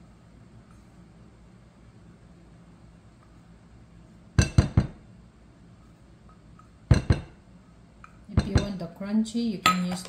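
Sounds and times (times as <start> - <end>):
metal cup knocking on glass bowl: 4.4 - 5.0, 6.9 - 7.3.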